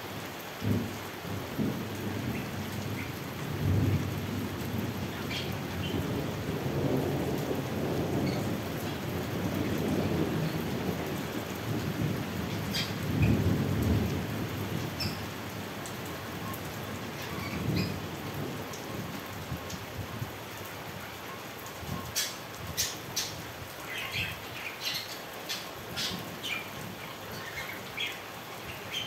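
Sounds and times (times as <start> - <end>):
steady rain: 0.0 - 29.0
thunder rumbling: 1.6 - 15.4, 17.0 - 19.2.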